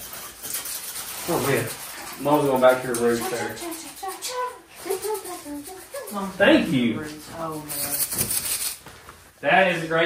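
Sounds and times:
child-like voice: 3.2 - 6.3.

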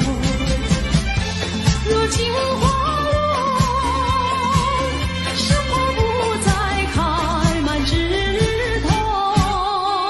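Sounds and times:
woman singing with vibrato: 0.0 - 1.0, 1.8 - 10.0.

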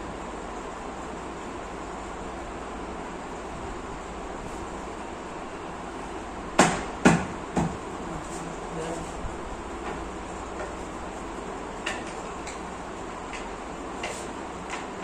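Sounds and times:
steady background hiss: 0.0 - 15.0.

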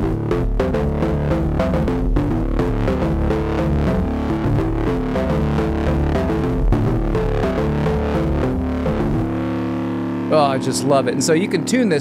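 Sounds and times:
distorted bass riff: 0.0 - 12.0.

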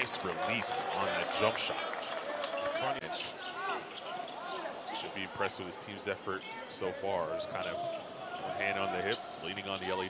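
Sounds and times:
arena background noise: 0.0 - 10.0.

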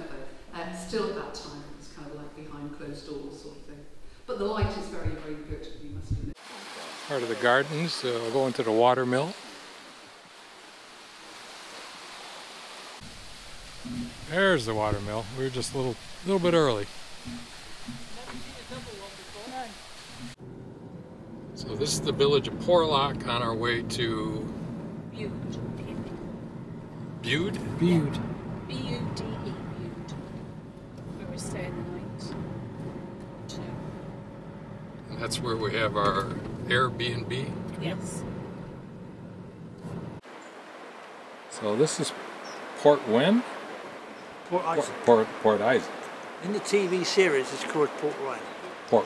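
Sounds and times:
steady outdoor hiss: 0.0 - 49.0
car cabin hum: 4.3 - 6.4
running water rushing: 4.3 - 20.4, 40.2 - 49.0
car engine and road rumble: 13.0 - 49.0.

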